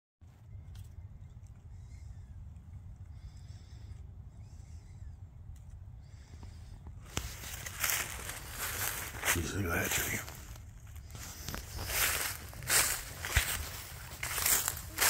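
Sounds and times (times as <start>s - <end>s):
footsteps crunching dry leaves: 7.1s - 15.0s.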